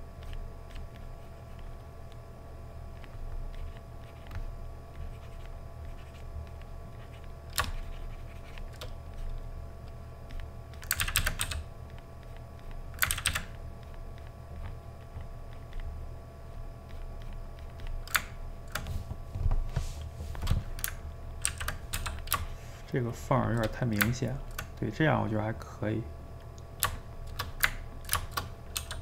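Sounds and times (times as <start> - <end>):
low steady hum: 0.0 - 29.0
keyboard and mouse clicking: 7.1 - 9.0, 10.3 - 15.9, 16.9 - 18.9, 20.4 - 22.5, 23.5 - 24.7, 26.8 - 29.0.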